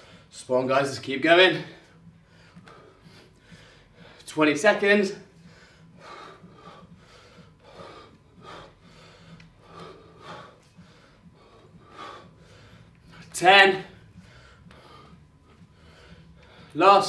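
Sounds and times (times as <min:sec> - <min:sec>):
man breathing hard: 0:00.0 - 0:00.4, 0:01.5 - 0:04.4, 0:05.2 - 0:16.8.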